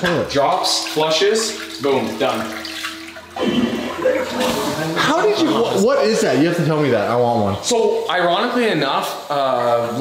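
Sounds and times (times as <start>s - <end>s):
toilet flushing: 0.0s - 6.4s
voices: 3.4s - 10.0s.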